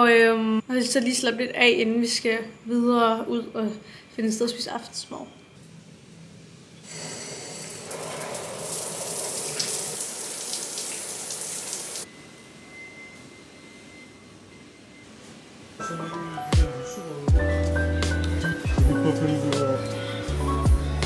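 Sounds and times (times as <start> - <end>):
shower water spraying on pebbles: 7.6 - 12.0.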